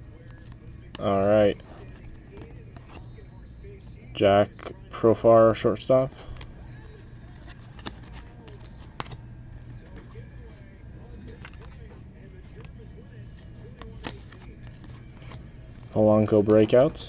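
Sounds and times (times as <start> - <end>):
faint distant talk: 0.0 - 17.0
low steady hum: 0.0 - 17.0
trading cards being flipped: 6.3 - 10.3, 11.2 - 17.0.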